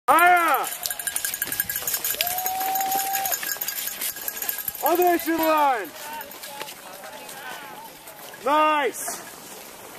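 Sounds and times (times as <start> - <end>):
spectators shouting cheers: 2.2 - 3.4.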